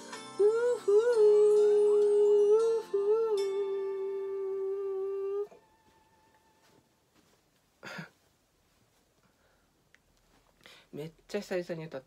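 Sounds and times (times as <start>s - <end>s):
quiet backing track: 0.0s - 12.0s.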